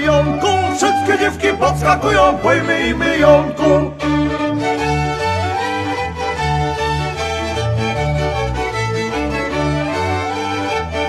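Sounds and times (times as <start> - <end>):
person singing: 0.0 - 4.4
fiddles playing: 0.0 - 11.0
pulsing bass: 0.0 - 11.0.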